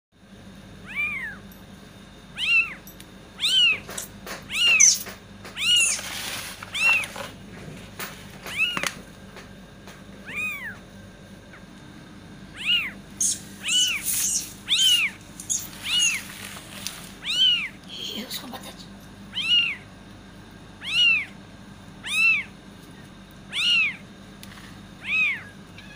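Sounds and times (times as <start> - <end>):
kittens mewing: 0.8 - 1.5, 2.3 - 7.3, 8.0 - 9.0, 10.2 - 10.9, 12.4 - 20.0, 20.8 - 21.4, 22.0 - 24.1, 25.0 - 25.9.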